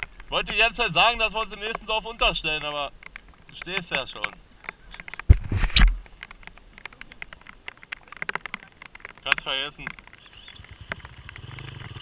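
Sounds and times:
raindrops ticking on camera: 0.0 - 12.0.

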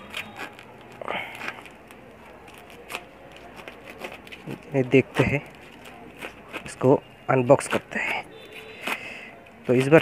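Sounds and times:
packing tape ripping from cardboard: 0.0 - 6.7.

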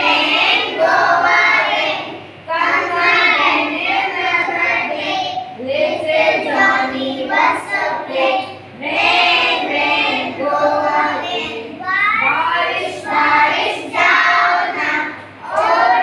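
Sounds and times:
children singing together: 0.0 - 16.0.

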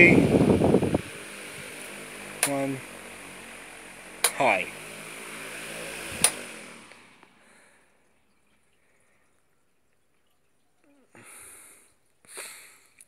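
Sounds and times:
electric fan whirring: 0.0 - 8.0
sharp clicks: 4.2 - 4.4, 6.2 - 7.0.

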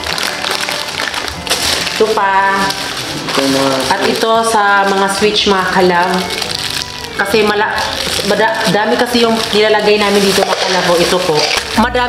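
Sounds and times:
background music: 0.0 - 12.0
plastic packaging rustling: 0.0 - 12.0.

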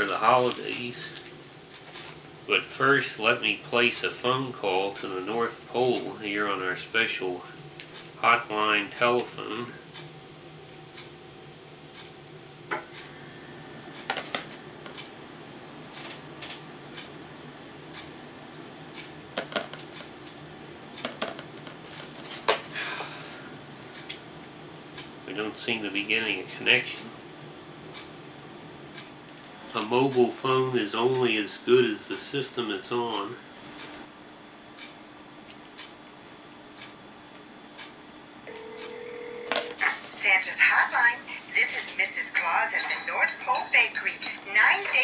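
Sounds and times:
recorded voice message: 8.2 - 9.8, 39.8 - 45.0
toy telephone electronic tone: 38.5 - 39.8.

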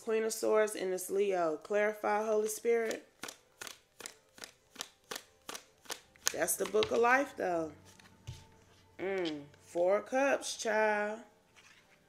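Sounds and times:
cards being shuffled: 2.8 - 7.2, 7.8 - 9.7.

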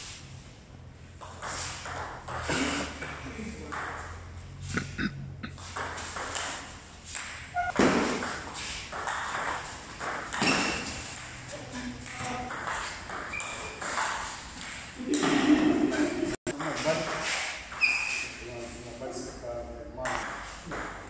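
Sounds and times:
table tennis ball pinging: 5.5 - 15.5.

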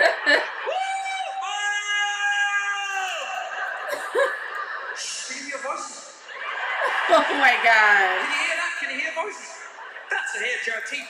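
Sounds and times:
faint audience laughter: 3.3 - 8.6, 9.2 - 11.0.

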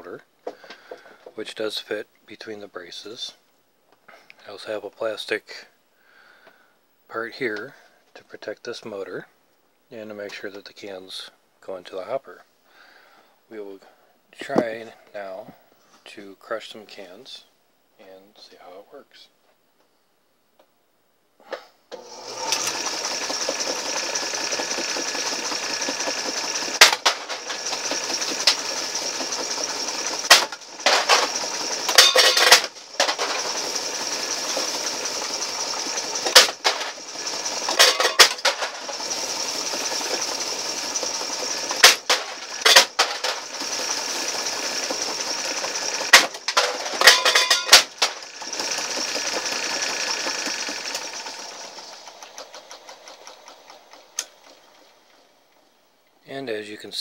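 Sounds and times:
electric motors whining: 21.9 - 55.6
cans bouncing: 26.7 - 27.6, 30.2 - 33.4, 41.8 - 43.4, 46.1 - 48.2.

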